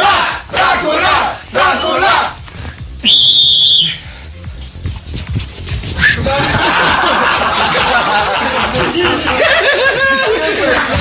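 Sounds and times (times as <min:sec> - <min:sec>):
whistle blast: 0:03.0 - 0:04.1
studio audience laughing: 0:06.3 - 0:11.0.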